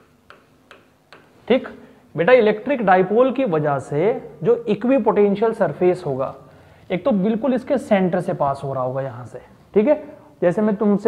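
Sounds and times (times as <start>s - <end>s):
pen tapping writing board: 0.0s - 1.4s.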